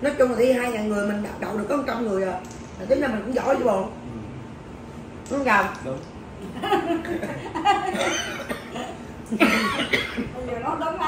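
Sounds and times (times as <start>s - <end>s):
man coughing: 7.2s - 10.3s.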